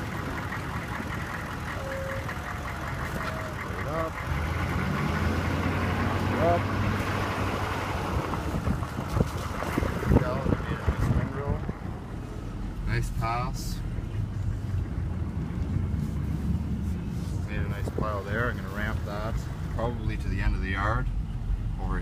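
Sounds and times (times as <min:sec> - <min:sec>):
truck engine running: 0:00.0 - 0:22.0.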